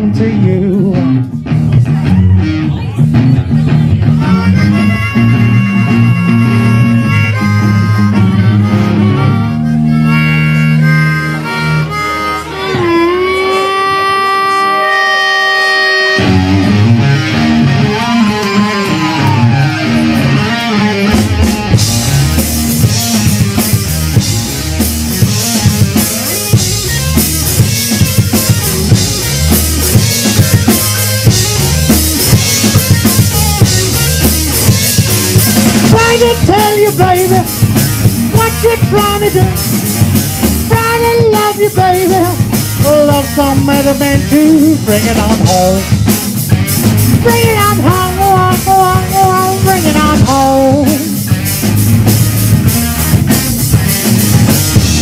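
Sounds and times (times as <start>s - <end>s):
blues rock band playing: 0.0s - 55.0s
electric guitar riff: 0.0s - 55.0s
harmonica with bent notes: 4.0s - 55.0s.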